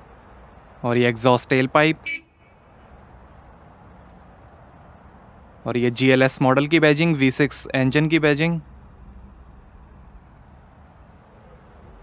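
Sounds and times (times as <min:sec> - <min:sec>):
faint background noise: 0:00.0 - 0:12.0
horn-like toot: 0:02.0 - 0:02.5.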